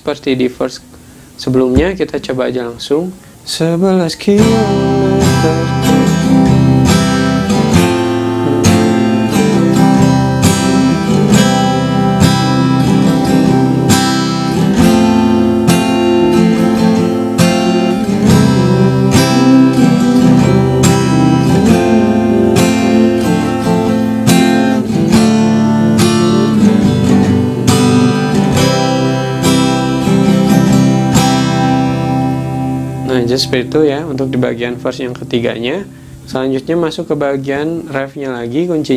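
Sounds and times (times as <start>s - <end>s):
acoustic guitar strumming: 0.2s - 38.7s.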